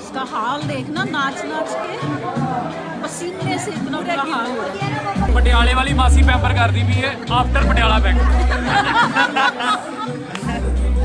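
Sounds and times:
people chattering in a hall: 0.0 - 11.0.

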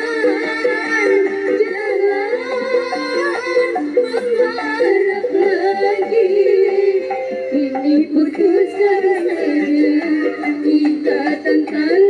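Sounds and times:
amplified live backing music: 0.0 - 12.0
woman singing into microphone: 0.0 - 12.0.

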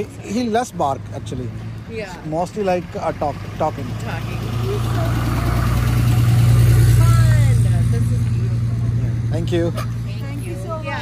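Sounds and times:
vehicle engine passing by: 0.0 - 11.0.

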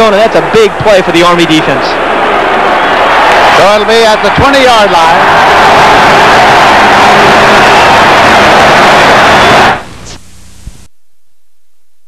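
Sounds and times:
videotape static hiss: 8.0 - 10.9.

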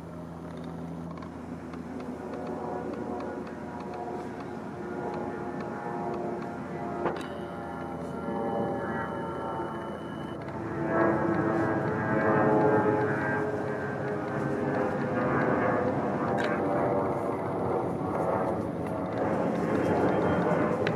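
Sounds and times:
steady engine drone: 0.0 - 20.9.

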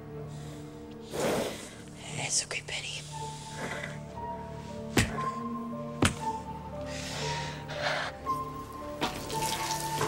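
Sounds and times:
soft background music: 0.0 - 10.0
liquid trickling from a tube: 9.0 - 10.0.

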